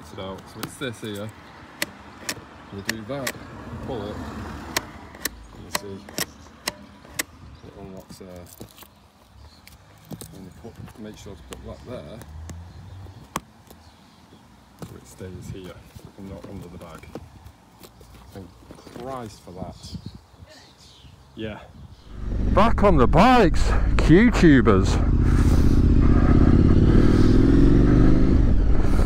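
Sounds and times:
handling ticks: 0.3 - 3.4, 4.6 - 15.0
strap fitting clicks: 1.8 - 3.4, 4.7 - 7.3
motorcycle engine accelerating: 22.0 - 29.0.

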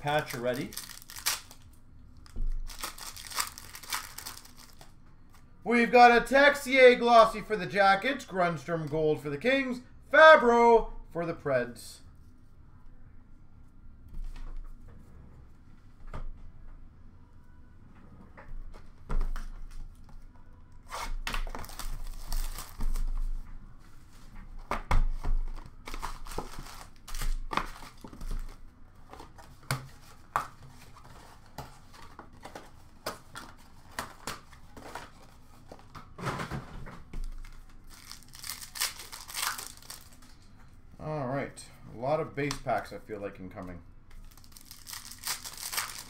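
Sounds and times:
card pack wrappers tearing: 0.0 - 1.8, 2.6 - 4.9, 20.9 - 23.0, 37.3 - 40.3, 44.2 - 46.0.

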